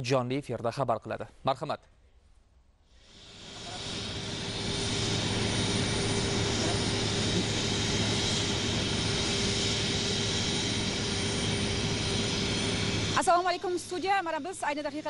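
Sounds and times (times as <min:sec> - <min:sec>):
jet engine rushing whine: 0:03.0 - 0:15.0.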